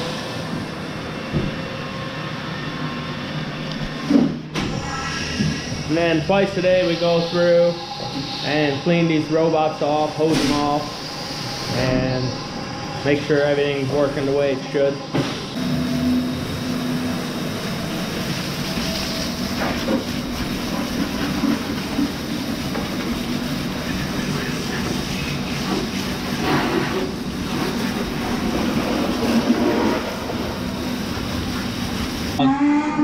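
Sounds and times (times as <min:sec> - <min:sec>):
hose spraying water on metal: 0:05.3 - 0:12.4, 0:16.1 - 0:32.4.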